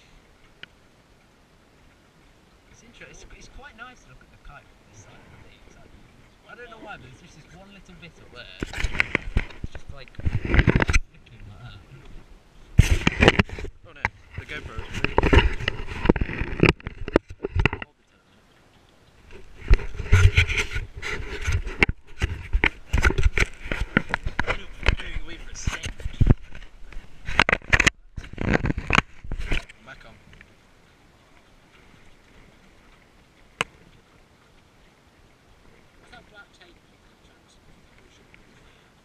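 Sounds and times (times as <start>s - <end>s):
glove rubbing against camera housing: 19.4s - 29.7s.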